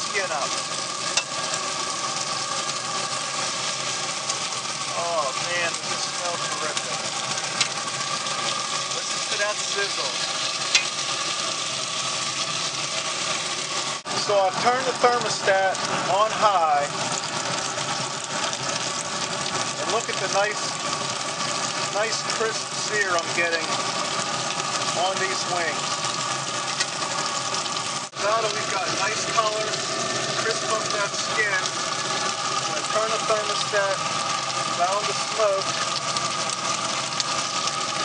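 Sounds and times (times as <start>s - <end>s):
chicken wings sizzling in skillet: 0.0s - 38.0s
grill fan hum: 0.0s - 38.0s
metal tongs clicking on skillet: 1.1s - 1.3s, 10.7s - 10.9s.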